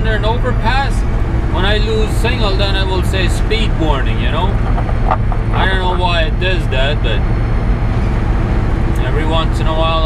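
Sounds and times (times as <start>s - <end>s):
truck diesel engine drone: 0.0s - 10.0s.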